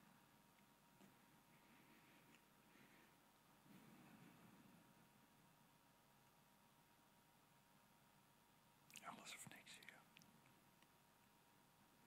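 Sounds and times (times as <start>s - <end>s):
person whispering faintly: 8.9s - 10.3s.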